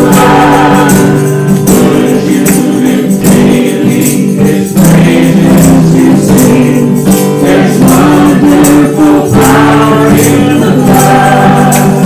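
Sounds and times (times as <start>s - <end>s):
people singing together: 0.0s - 12.0s
strummed acoustic guitar: 0.0s - 12.0s.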